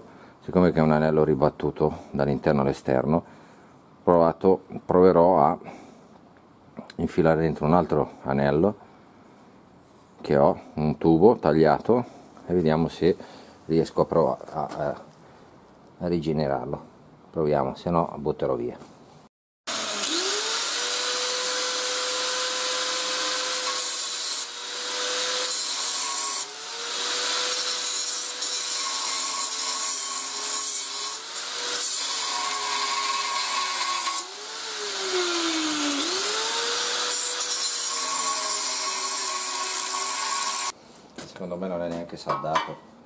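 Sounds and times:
angle grinder cutting metal: 19.7s - 40.8s.

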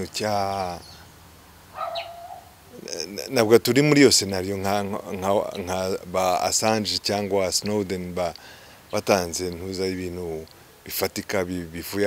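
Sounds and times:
short bird call: 1.8s - 2.6s
person speaking: 2.7s - 12.0s.

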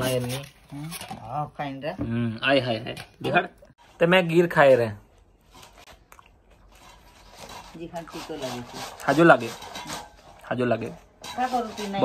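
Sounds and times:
man chewing crunchy food: 5.1s - 7.6s.

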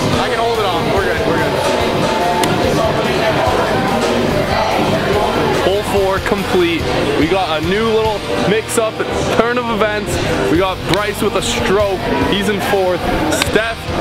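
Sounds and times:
background music: 0.0s - 14.0s
voices talking or singing: 0.0s - 14.0s.

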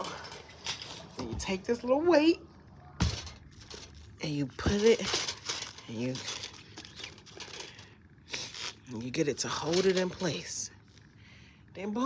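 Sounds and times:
rustling and handling noises: 0.0s - 1.6s, 3.0s - 11.1s.

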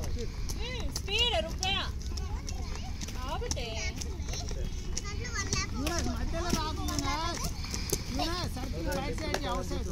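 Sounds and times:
skate wheels rolling on concrete: 0.0s - 9.9s.

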